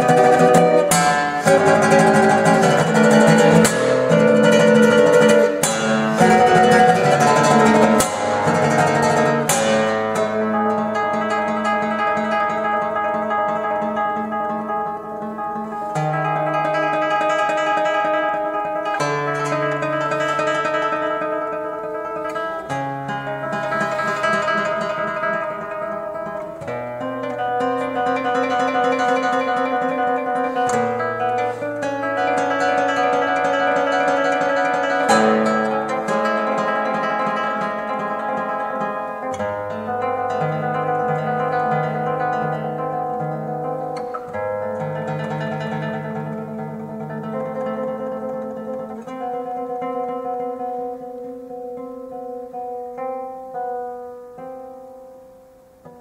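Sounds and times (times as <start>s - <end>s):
classical guitar playing: 0.0s - 56.0s.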